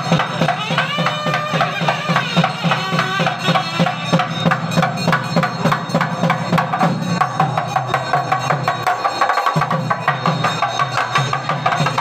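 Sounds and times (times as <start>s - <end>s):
fast drum strokes: 0.0s - 12.0s.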